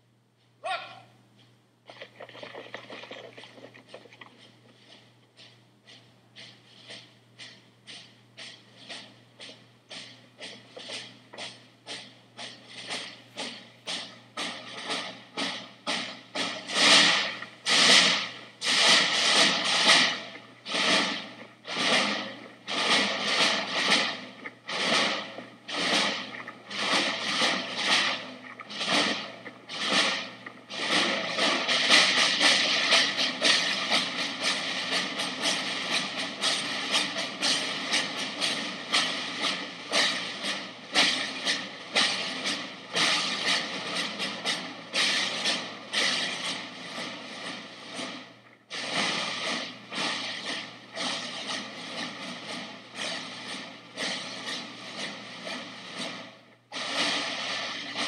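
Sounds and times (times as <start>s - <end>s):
field drums beating: 1.9s - 58.0s.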